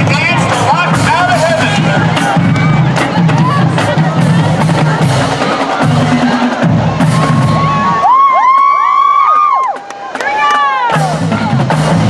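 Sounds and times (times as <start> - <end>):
marching band playing low notes: 0.0 - 8.3, 9.7 - 12.0
high voices whooping and cheering: 6.9 - 11.1.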